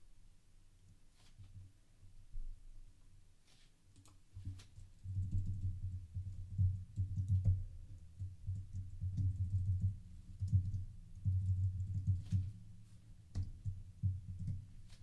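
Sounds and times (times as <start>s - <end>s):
typing on computer keyboard: 6.5s - 12.5s.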